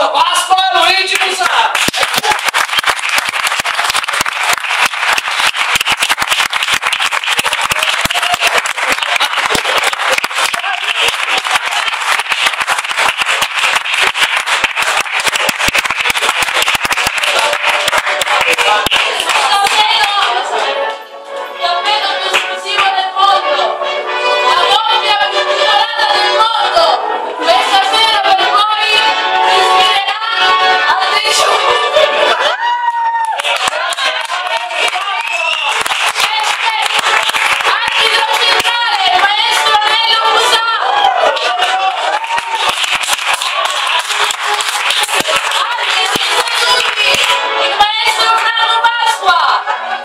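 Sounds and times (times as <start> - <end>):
crowd applauding: 1.0 - 21.0, 31.4 - 50.0
music with voices: 17.1 - 32.6, 43.8 - 50.0.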